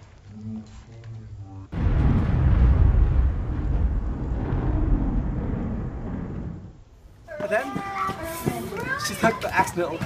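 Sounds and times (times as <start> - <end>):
deep rumbling explosion roar: 1.8 - 7.2.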